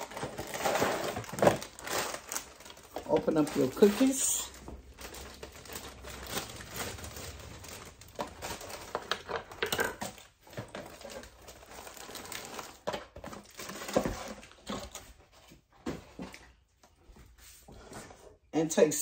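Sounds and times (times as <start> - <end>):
plastic wrapper crinkling: 0.0 - 15.0.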